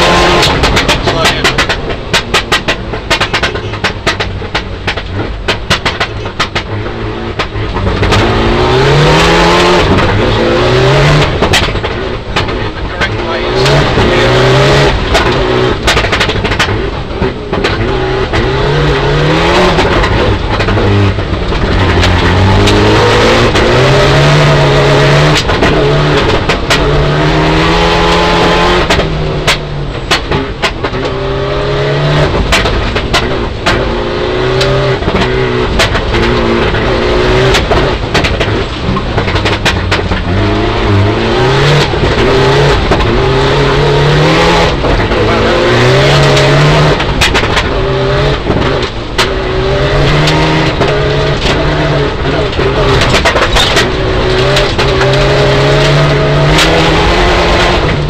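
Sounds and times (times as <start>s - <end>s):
car engine revving: 0.0s - 58.0s
gravel hitting car underbody: 0.3s - 27.4s, 32.0s - 58.0s.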